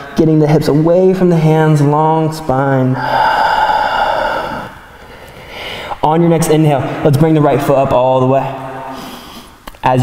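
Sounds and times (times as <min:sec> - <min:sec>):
man exhaling: 0:02.9 - 0:06.0.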